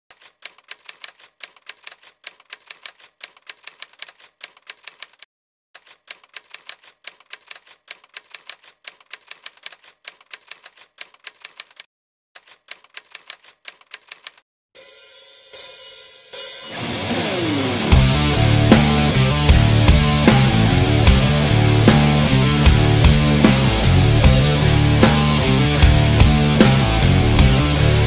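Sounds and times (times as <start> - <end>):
typewriter keys clacking: 0.1 - 14.4.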